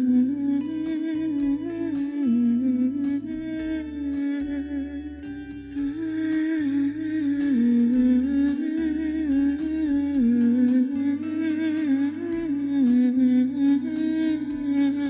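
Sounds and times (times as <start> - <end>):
wordless hummed melody: 0.0 - 15.0.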